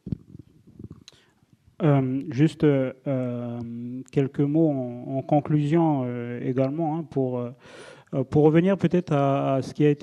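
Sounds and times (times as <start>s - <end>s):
microphone handling thump and rubbing: 0.0s - 1.0s
man speaking: 1.8s - 10.0s.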